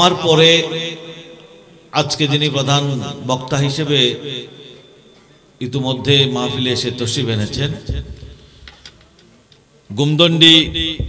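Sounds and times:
man speaking over loudspeakers: 0.0 - 1.2, 2.0 - 4.8, 5.6 - 8.2, 9.9 - 11.0.

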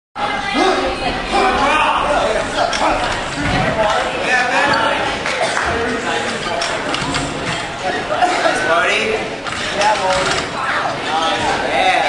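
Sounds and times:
voices talking: 0.2 - 12.0.

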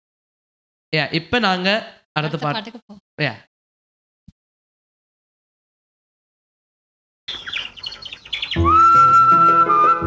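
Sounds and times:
birds chirping: 7.3 - 9.0
flute melody over bass and chords: 8.5 - 10.0.

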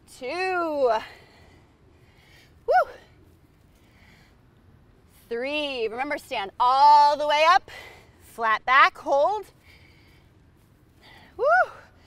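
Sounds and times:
faint breathing: 1.0 - 5.3, 9.5 - 12.0.

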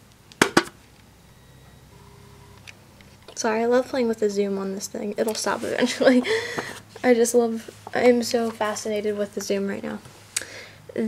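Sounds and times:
low room hum: 0.0 - 11.0
zoom motor whine: 1.3 - 3.2.

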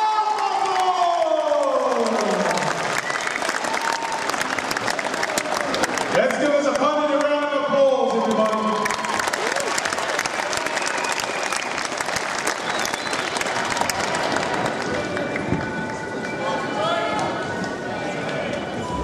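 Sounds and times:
crowd clapping: 0.0 - 16.7.

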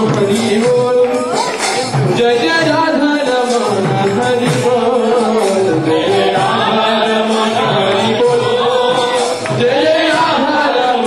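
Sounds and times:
voices singing a devotional chant: 0.0 - 11.0.

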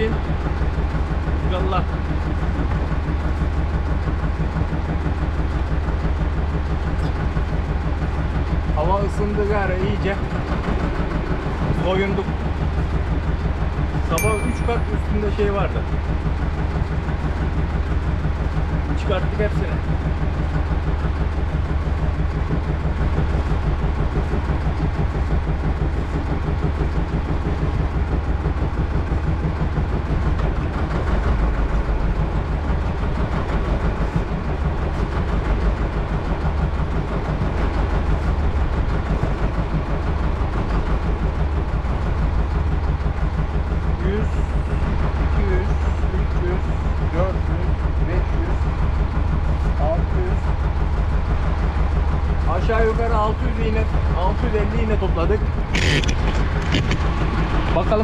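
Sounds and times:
boat engine idling: 0.0 - 58.0.

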